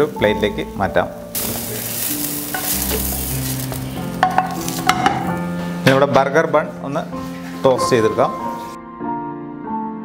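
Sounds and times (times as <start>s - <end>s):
sausages sizzling in a frying pan: 0.0s - 5.7s.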